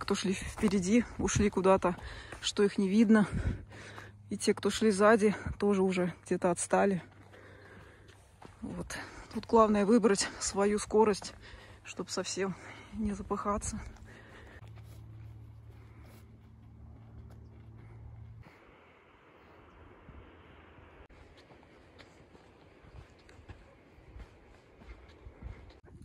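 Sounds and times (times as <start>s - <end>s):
footsteps on dirt trail: 0.0s - 19.8s, 21.1s - 26.0s
low steady rumble: 0.0s - 21.8s.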